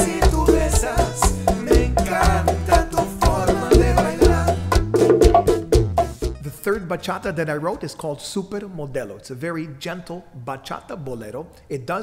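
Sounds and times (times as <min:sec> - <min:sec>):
bongos: 0:00.0 - 0:06.5
bachata music: 0:00.0 - 0:07.4.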